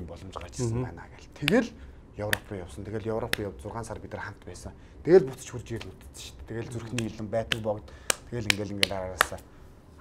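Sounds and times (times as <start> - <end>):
man talking: 0.0 - 9.5.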